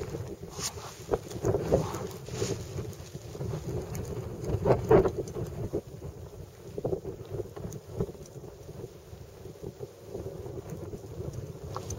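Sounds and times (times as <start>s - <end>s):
wind buffeting microphone: 0.0s - 11.9s.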